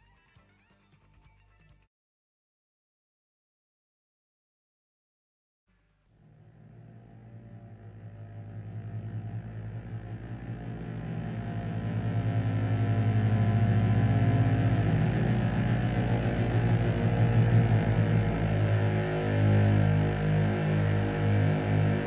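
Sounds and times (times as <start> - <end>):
low fluttering synthesizer drone: 6.1 - 22.0.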